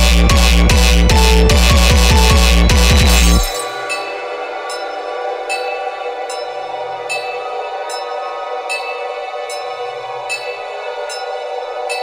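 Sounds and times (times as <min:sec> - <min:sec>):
bass-heavy electronic drum beat: 0:00.0 - 0:03.6.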